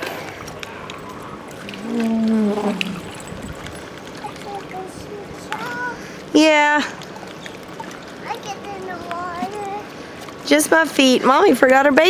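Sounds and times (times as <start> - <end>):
faint water sounds: 0.0 - 12.0.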